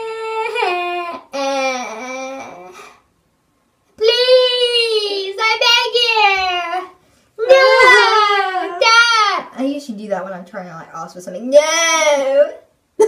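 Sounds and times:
girls wailing mock cries: 7.4s - 9.5s.

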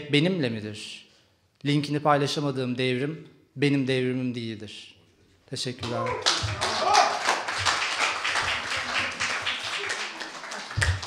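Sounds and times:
audience applauding: 5.8s - 11.0s.

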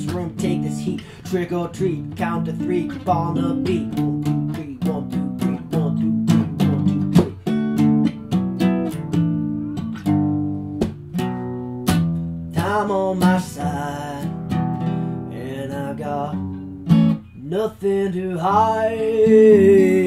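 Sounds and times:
acoustic guitar strumming chords: 0.0s - 20.0s
lead guitar bending notes: 2.0s - 12.5s.

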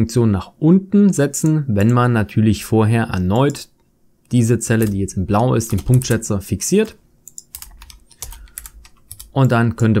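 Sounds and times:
computer keyboard key clicks: 4.8s - 5.0s, 5.7s - 9.6s.

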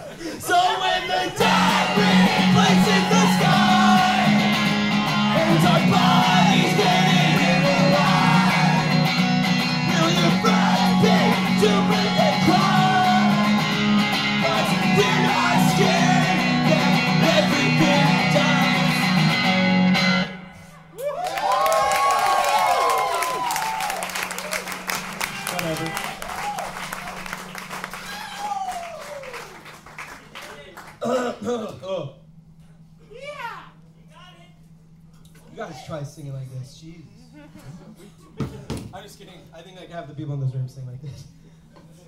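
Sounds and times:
man singing: 0.4s - 13.7s, 14.4s - 19.3s
audience cheering and whooping: 0.4s - 17.2s, 20.9s - 30.0s
electric guitar strummed: 1.4s - 20.6s.

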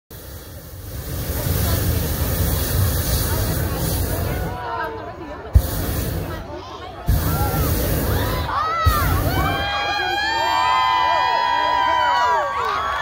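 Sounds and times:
propane burner firing: 0.1s - 10.3s
crowd voices: 0.2s - 13.0s.

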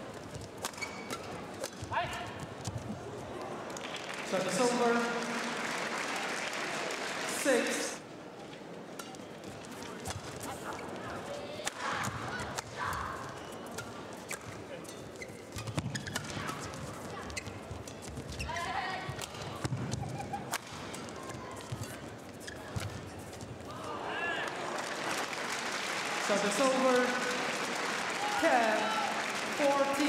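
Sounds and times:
shoes squeaking on floor: 0.3s - 1.4s, 13.3s - 19.2s, 19.8s - 23.6s
rackets striking shuttlecock: 0.3s - 2.8s.

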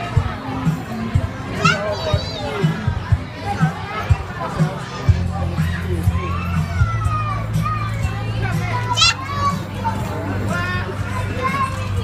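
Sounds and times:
children chattering and shouting: 0.0s - 12.0s.

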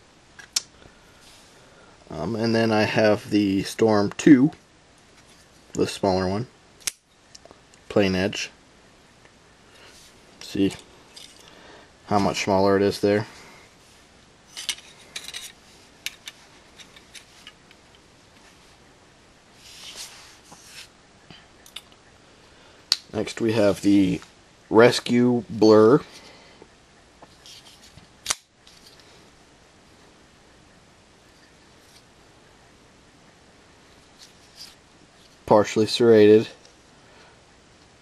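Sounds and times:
faint handling noise: 9.2s - 18.9s, 22.9s - 29.4s, 33.8s - 37.0s.

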